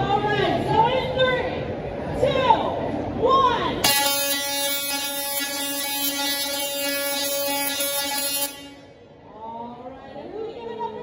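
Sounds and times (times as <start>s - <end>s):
tesla coil buzzing: 3.8s - 9.0s.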